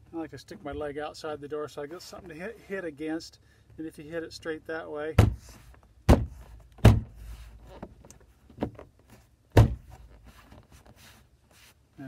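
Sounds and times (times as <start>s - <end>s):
hard thumps on car door panel: 5.2s - 7.2s, 9.5s - 10.0s.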